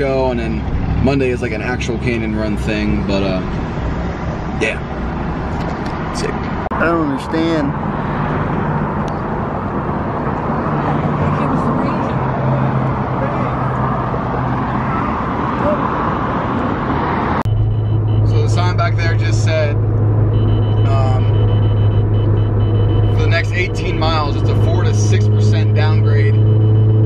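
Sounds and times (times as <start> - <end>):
voices: 0.0 - 3.5, 4.6 - 4.9, 6.1 - 7.8, 10.6 - 13.8, 18.2 - 19.8, 20.6 - 21.5, 23.1 - 26.4
car cabin drone: 0.0 - 27.0
traffic noise: 0.0 - 27.0.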